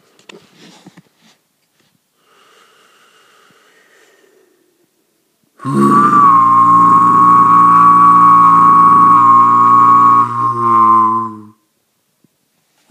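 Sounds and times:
man overtone singing: 5.6 - 11.5.

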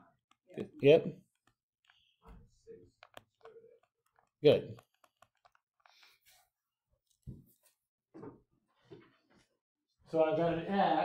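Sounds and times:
stylus scratching on tablet screen: 2.9 - 6.6.

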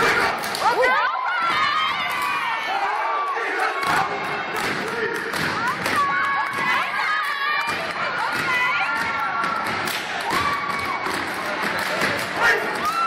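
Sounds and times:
crowd cheering and shouting: 0.0 - 13.0.

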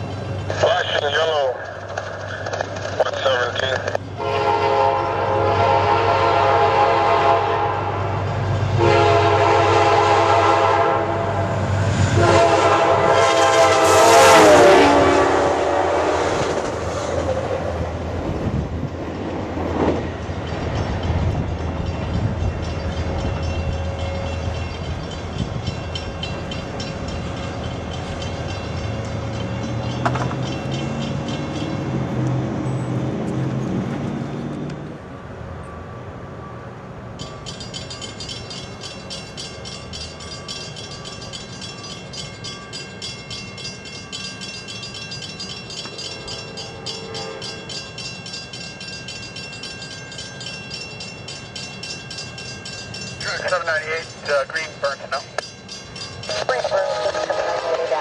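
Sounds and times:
train wheels rumbling on rails: 0.0 - 35.1
locomotive air horn blasts: 4.2 - 8.2, 8.8 - 11.5, 12.1 - 16.5, 46.6 - 47.7.

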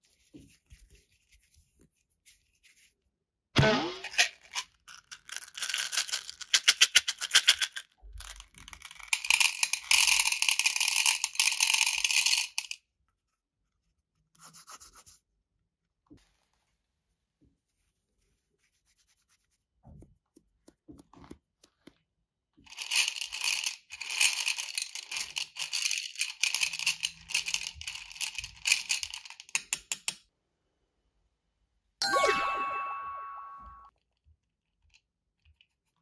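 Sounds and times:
bright ringing ding: 32.0 - 33.9.

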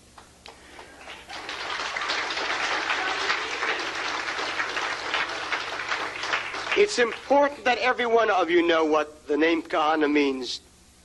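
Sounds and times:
audience applauding: 0.5 - 7.5.

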